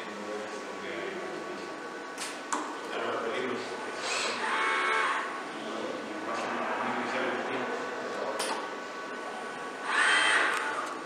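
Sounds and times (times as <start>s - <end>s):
robot arm servo motors whining: 4.0s - 5.3s, 9.8s - 11.0s.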